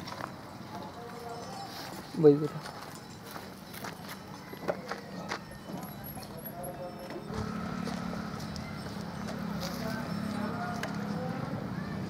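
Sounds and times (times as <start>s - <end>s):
small motorcycle engine running: 7.3s - 12.0s.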